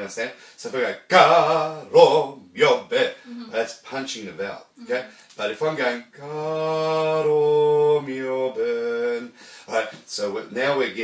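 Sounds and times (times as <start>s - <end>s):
man singing sustained notes: 1.1s - 2.4s, 6.1s - 9.4s.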